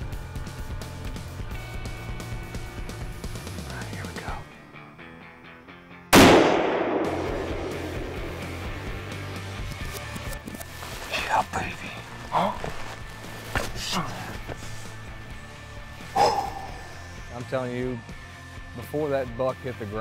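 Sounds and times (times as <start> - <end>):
rifle shot echoing: 6.1 - 9.2.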